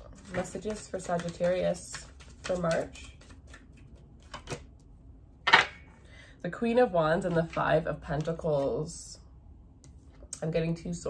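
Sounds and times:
cards clicking in shuffle: 0.2s - 4.7s.

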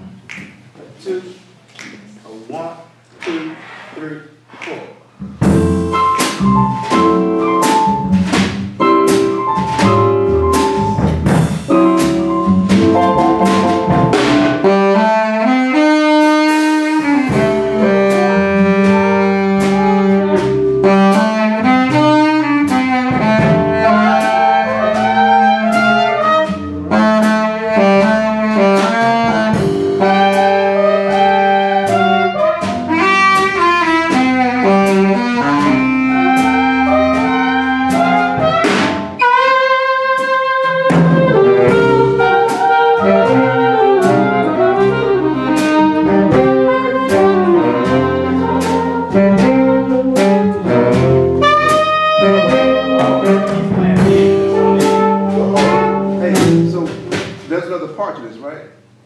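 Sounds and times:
big band jazz: 3.2s - 59.0s.

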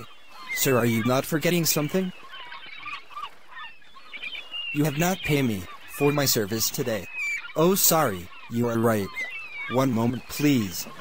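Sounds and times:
seagulls calling: 0.0s - 11.0s.

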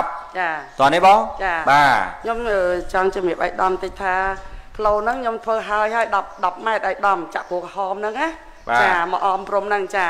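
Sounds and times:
surrounding talk: 0.0s - 10.0s.

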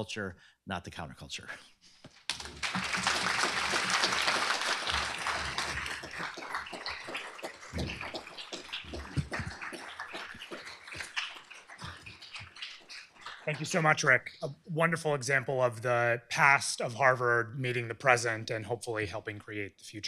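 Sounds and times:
audience applauding: 2.3s - 14.4s.

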